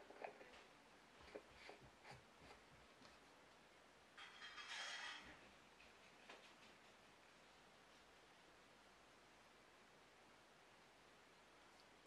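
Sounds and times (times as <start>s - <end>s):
soft rush of noise: 5.3s - 12.0s.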